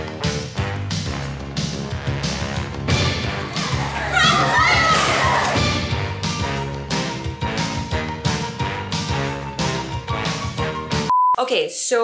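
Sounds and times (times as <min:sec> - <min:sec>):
background music: 0:00.0 - 0:11.1
children shouting and squealing: 0:03.6 - 0:05.6
high wavering shout: 0:03.9 - 0:05.6.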